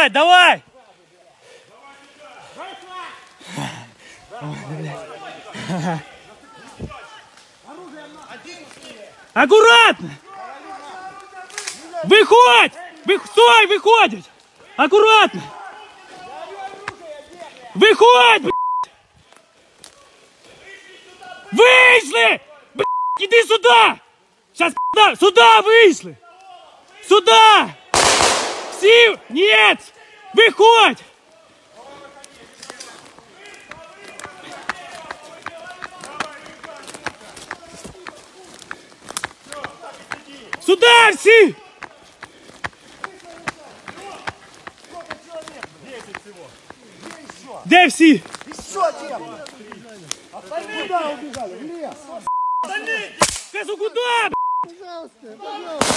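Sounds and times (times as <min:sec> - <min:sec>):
sharp crack: 0:11.4 - 0:12.0, 0:28.0 - 0:29.1, 0:53.2 - 0:53.8
footsteps crunching through dry leaves: 0:31.7 - 0:52.2.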